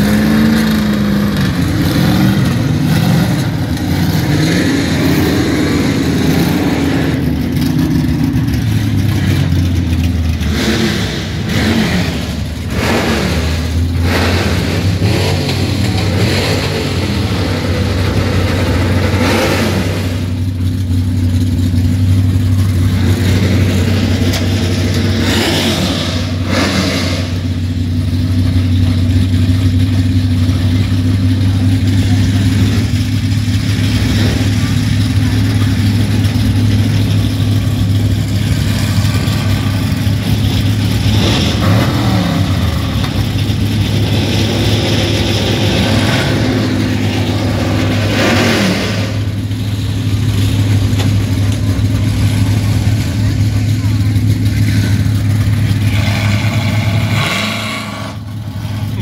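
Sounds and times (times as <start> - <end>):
car engines idling and revving: 0.0 - 59.0.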